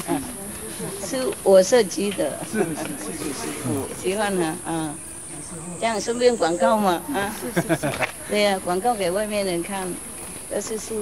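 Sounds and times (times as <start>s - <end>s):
insects chirping chorus: 0.0s - 11.0s.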